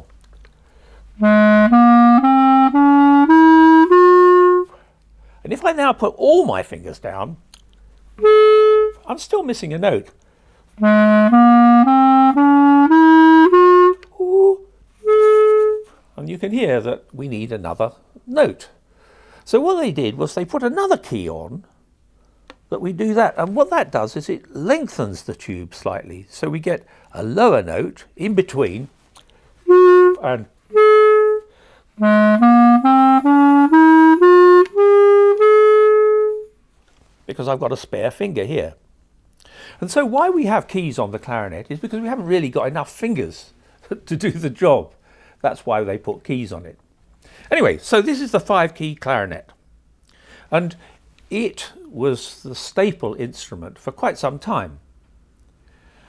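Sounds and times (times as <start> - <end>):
clarinet playing a rising scale: 1.2 - 4.8, 8.2 - 9.1, 10.8 - 15.9, 29.7 - 36.6.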